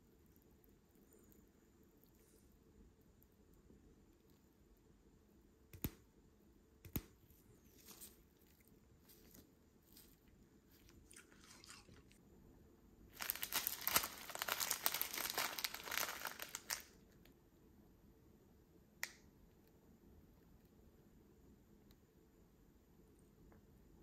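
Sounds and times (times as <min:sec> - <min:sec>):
plastic snack packet crinkling: 0:13.1 - 0:17.2
faint crackles: 0:13.1 - 0:17.3.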